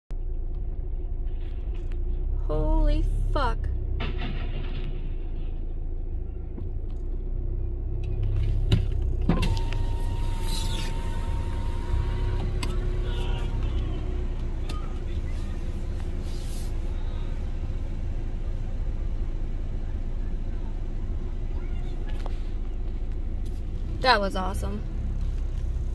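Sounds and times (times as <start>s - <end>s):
car cabin rumble: 0.2s - 25.9s.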